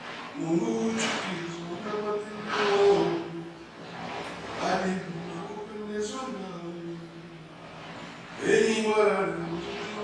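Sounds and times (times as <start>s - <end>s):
man talking: 4.6s - 7.0s, 8.4s - 10.0s.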